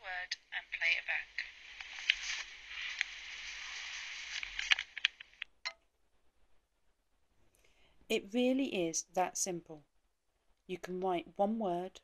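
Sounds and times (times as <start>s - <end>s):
thin hiss with clicks: 1.4s - 5.5s.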